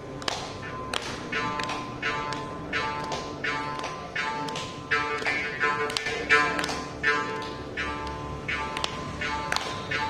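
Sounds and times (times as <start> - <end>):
mridangam strokes: 0.0 - 10.0.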